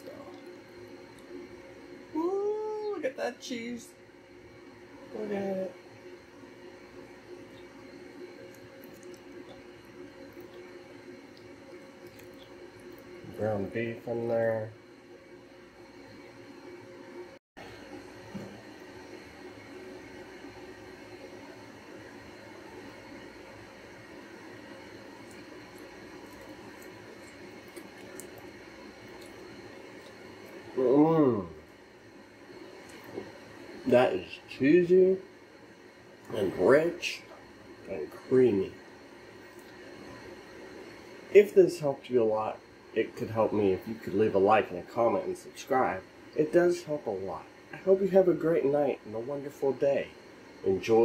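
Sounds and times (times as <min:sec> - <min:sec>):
man speaking: 0:13.3 - 0:14.7, 0:30.8 - 0:31.6, 0:33.9 - 0:35.3, 0:36.3 - 0:37.3, 0:37.9 - 0:38.8, 0:41.4 - 0:51.0.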